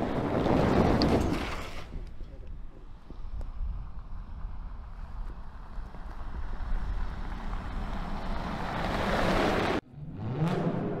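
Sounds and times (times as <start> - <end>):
tyres on gravel and wind rush: 0.0 - 9.8.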